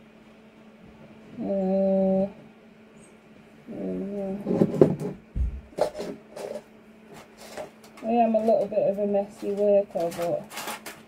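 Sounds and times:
person humming: 1.3s - 2.4s, 3.7s - 4.6s.

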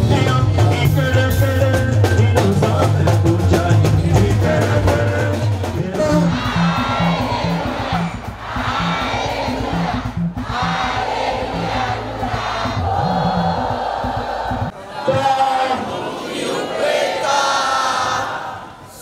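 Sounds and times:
music with low beat: 0.0s - 14.7s
crowd singing and calling out: 0.0s - 19.0s.

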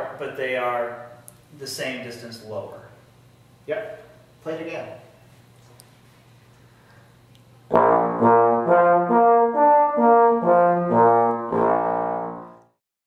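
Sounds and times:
trombone slurring notes: 7.7s - 12.8s.

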